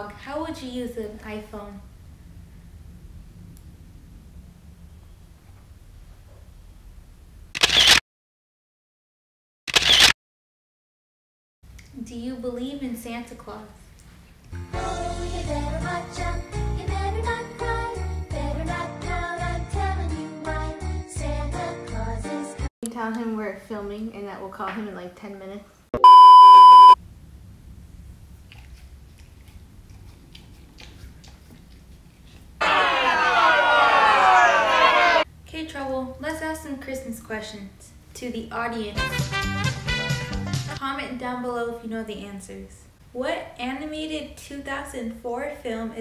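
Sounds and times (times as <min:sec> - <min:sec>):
camera shutter sound: 0:07.5 - 0:08.0, 0:09.7 - 0:10.2
electronic test tone beep: 0:26.0 - 0:27.0.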